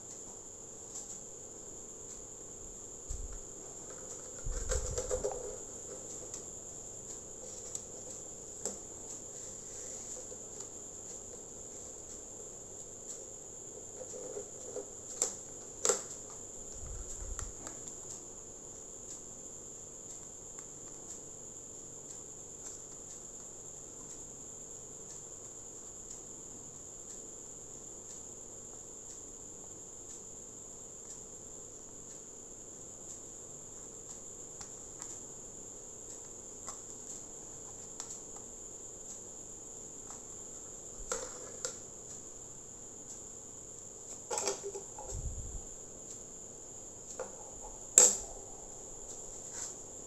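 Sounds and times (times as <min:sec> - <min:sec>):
crickets chirring: 0:00.0 - 0:50.0.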